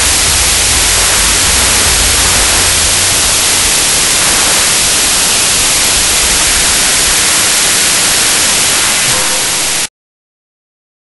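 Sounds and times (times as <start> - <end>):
torch flame hissing: 0.0 - 9.9.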